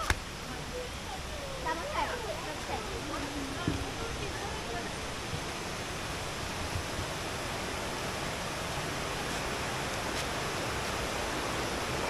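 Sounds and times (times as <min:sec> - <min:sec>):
river running over rocks: 0:00.0 - 0:12.0.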